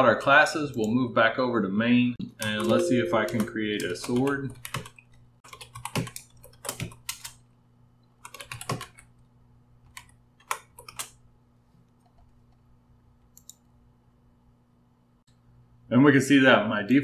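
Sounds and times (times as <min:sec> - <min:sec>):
typing on keyboard: 0:02.4 - 0:07.4, 0:08.2 - 0:09.2, 0:09.9 - 0:11.2.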